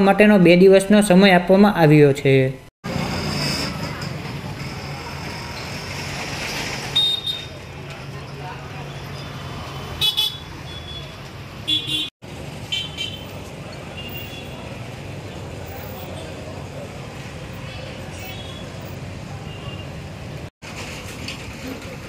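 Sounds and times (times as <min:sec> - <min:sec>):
motor scooters and motorcycles running: 0:02.9 - 0:10.6
vehicle horn toots: 0:07.0 - 0:07.5, 0:10.0 - 0:12.1.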